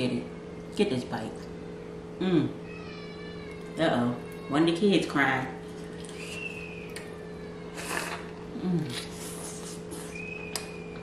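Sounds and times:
low room hum: 0.0s - 11.0s
child crying faintly: 2.3s - 4.8s, 7.0s - 8.3s
wet eating noise: 5.6s - 11.0s.

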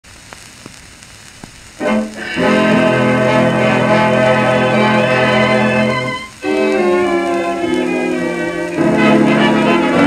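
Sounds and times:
record surface hiss: 0.0s - 10.0s
dance orchestra playing chords: 1.8s - 10.0s.

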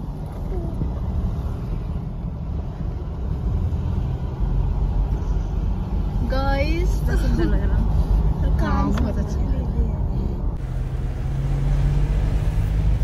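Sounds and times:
car driving rumble from inside: 0.0s - 13.0s.

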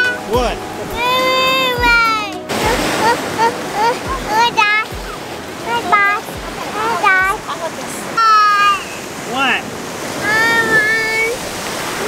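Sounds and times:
surf on beach: 0.0s - 12.0s
toddler crying: 1.0s - 5.2s, 8.2s - 8.9s.

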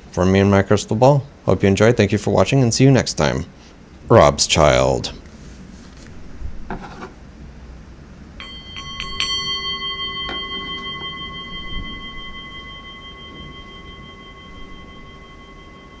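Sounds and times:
bell-like metal chimes: 8.4s - 16.0s.

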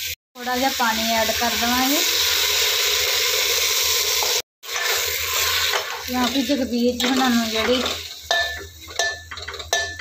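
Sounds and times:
metal ladle clinking on pot: 7.0s - 10.0s.

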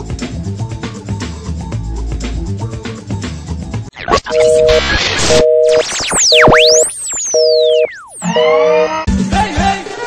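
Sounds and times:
telephone busy signal beeps: 4.3s - 9.0s.

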